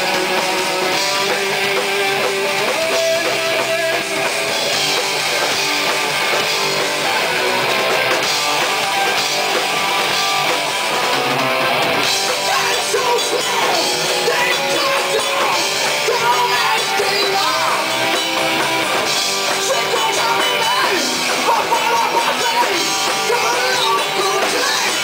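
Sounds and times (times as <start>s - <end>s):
drum kit: 0.0s - 25.0s
electric guitars: 0.0s - 25.0s.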